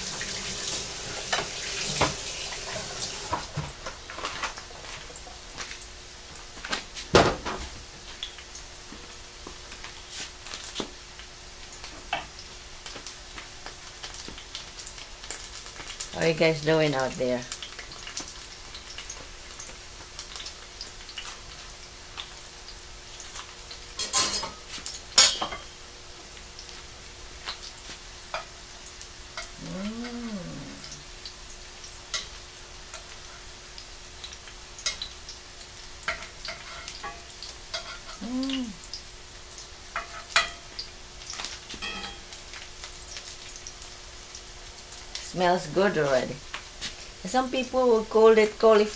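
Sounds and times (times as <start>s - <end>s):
fritters sizzling in oil: 0.0s - 48.9s
rising and falling vocal sounds: 29.6s - 31.0s.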